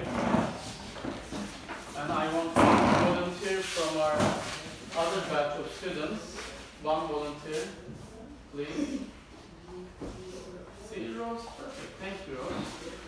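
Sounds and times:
wooden chairs scraping on floor: 0:00.0 - 0:05.3
chair knocks: 0:02.5 - 0:03.2.

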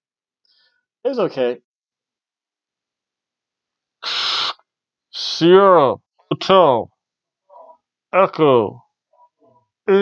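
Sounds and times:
man breathing hiss: 0:04.0 - 0:04.6.

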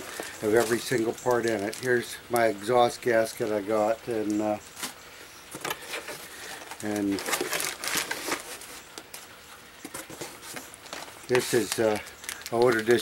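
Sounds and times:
plastic and paper wrapping crinkling: 0:00.0 - 0:03.5, 0:04.2 - 0:13.0.

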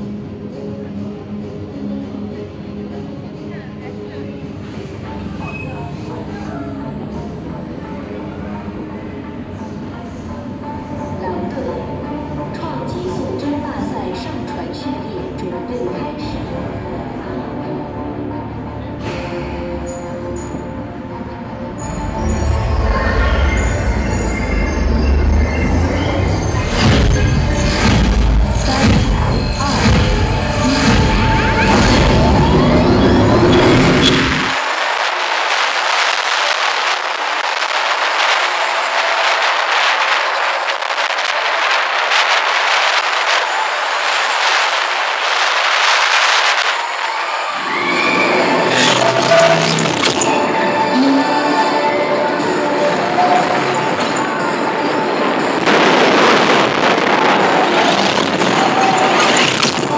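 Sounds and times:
ride soundtrack music: 0:00.0 - 0:36.9, 0:39.4 - 0:59.9
deep rumble of coaster: 0:21.3 - 0:59.9
wind rushing over microphone: 0:32.0 - 0:50.3.

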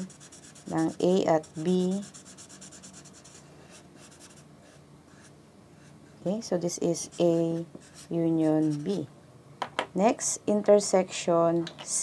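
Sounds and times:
marker scribbling on paper: 0:00.0 - 0:06.2, 0:06.9 - 0:09.0.

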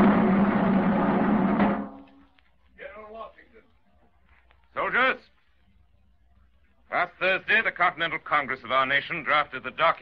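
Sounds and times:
snare drum roll: 0:00.0 - 0:02.2.

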